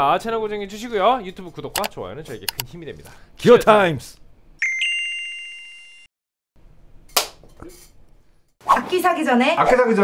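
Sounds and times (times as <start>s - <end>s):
bell-like ring with trill: 4.6s - 6.1s.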